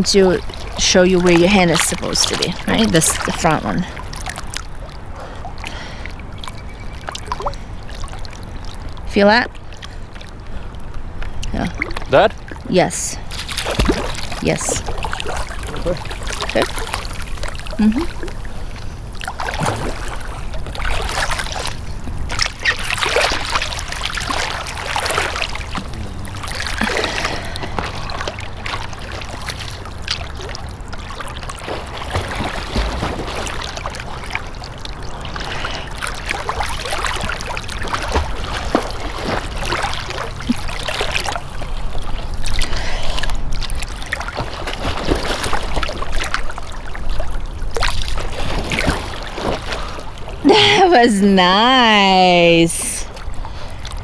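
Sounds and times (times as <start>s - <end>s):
water lapping and sloshing: 0.0s - 54.0s
water splashes: 0.0s - 54.0s
steady low rumble: 23.9s - 30.1s.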